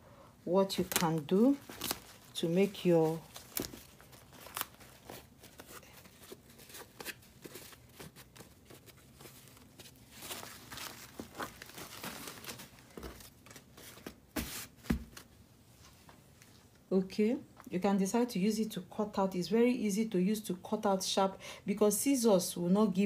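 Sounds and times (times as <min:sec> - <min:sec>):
fabric rustling and crinkling: 0:00.6 - 0:16.2.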